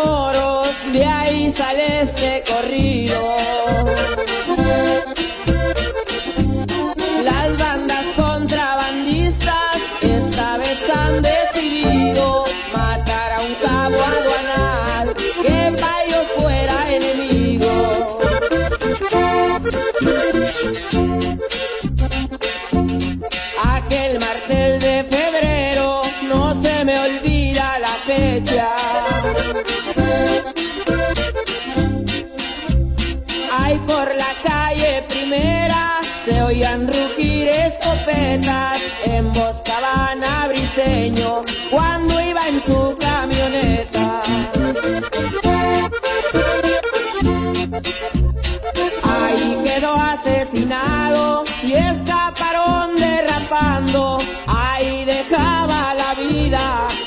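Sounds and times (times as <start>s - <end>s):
accordion melody: 0.0s - 57.0s
pulsing bass rhythm: 0.0s - 57.0s.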